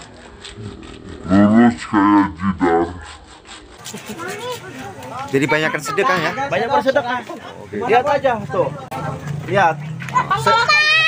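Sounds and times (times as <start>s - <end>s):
rubbing scraping noise: 0.0s - 8.4s
children chattering: 3.8s - 11.0s.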